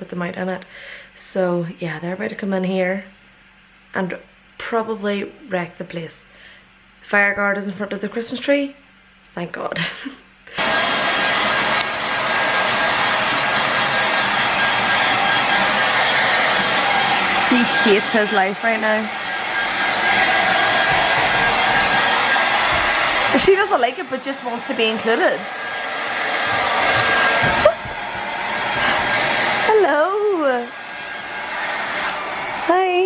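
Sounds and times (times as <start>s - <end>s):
hair dryer blowing: 10.5s - 33.0s.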